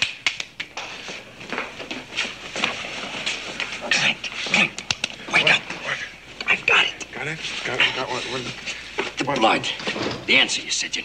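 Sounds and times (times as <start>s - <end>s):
man clapping hands: 0.0s - 0.8s
indistinct movement noises: 0.0s - 10.9s.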